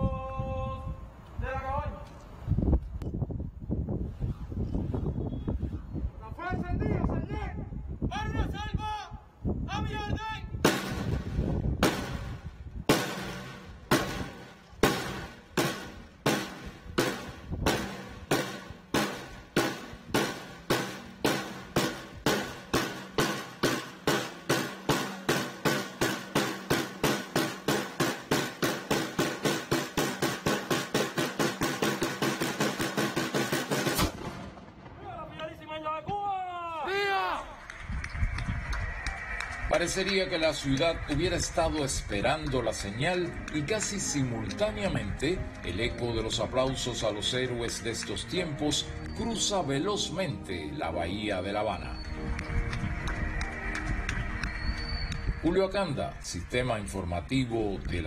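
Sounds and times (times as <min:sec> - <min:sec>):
military drum roll: 0:10.6 - 0:35.3.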